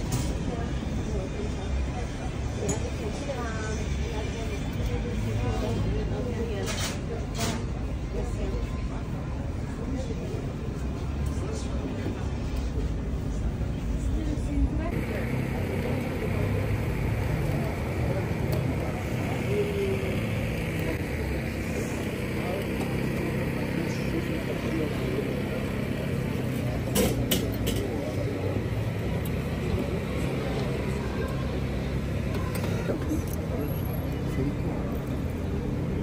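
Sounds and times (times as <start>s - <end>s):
chatter of people: 0.0s - 36.0s
traffic rumble: 0.0s - 36.0s.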